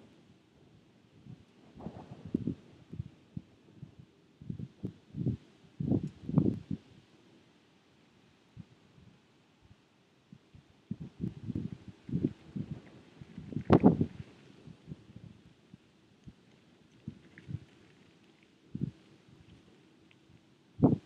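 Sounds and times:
wind buffeting microphone: 0:01.1 - 0:07.1, 0:10.3 - 0:18.0, 0:18.6 - 0:21.0.

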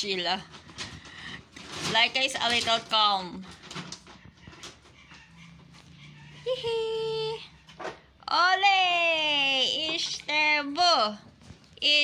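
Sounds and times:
dog whining: 0:04.2 - 0:07.8.

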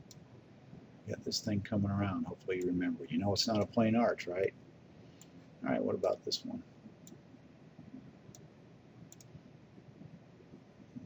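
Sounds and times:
room hiss: 0:00.0 - 0:11.0
faint computer mouse clicks: 0:09.1 - 0:09.3.

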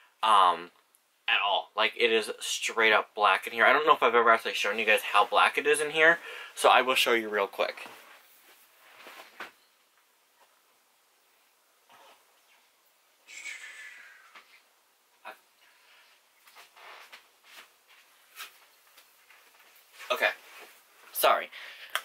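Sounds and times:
person moving about room: 0:02.7 - 0:13.0, 0:14.2 - 0:22.0
brief pitched hissing: 0:13.3 - 0:14.6.

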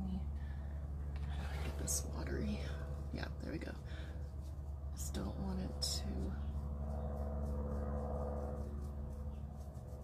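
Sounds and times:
low electrical hum: 0:00.0 - 0:10.0
paintbrush dabbing paint: 0:04.2 - 0:10.0.

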